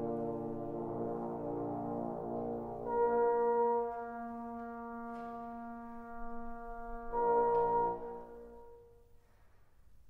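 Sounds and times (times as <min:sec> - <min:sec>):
trombone choir sustained chord: 0:00.0 - 0:08.8.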